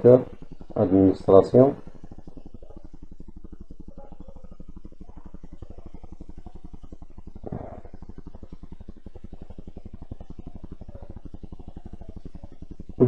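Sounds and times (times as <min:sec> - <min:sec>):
fast even pulse: 0:00.0 - 0:13.0
low steady hum: 0:00.0 - 0:13.0.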